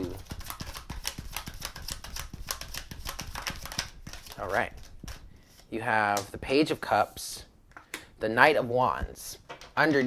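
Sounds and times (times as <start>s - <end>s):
cards being shuffled: 0.0s - 6.3s.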